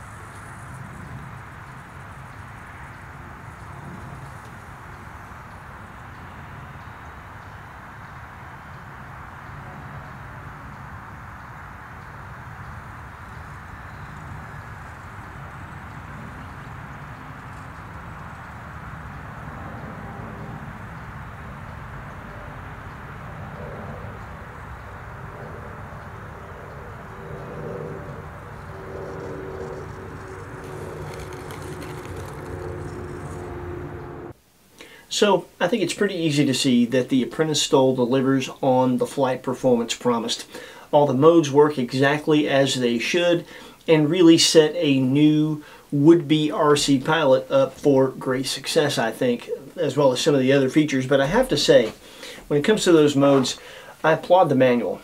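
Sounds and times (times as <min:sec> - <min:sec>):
outdoor rushing noise: 0:00.0 - 0:34.4.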